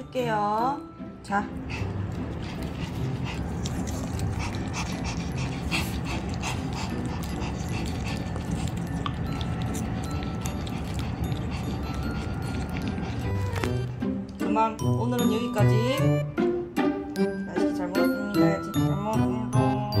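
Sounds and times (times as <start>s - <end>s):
kitten licking and lapping: 1.7s - 14.4s.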